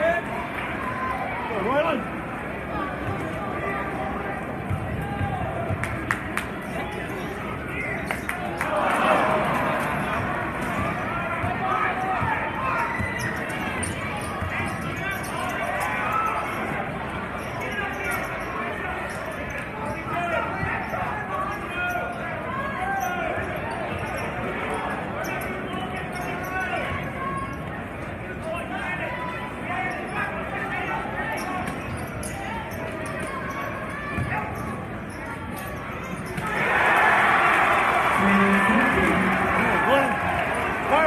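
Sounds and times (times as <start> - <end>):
crowd chatter: 0.0 - 41.0.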